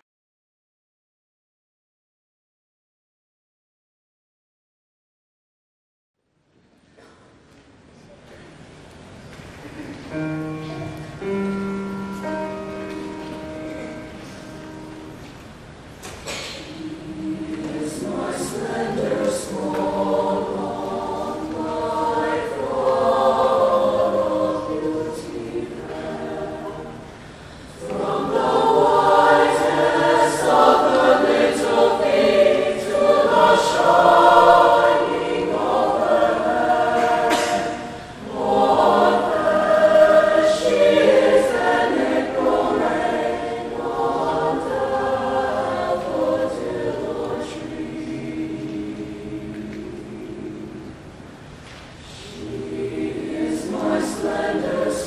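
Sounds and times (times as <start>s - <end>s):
mixed choir singing: 11.2s - 51.4s, 52.0s - 55.0s
singers breathing: 27.1s - 27.8s.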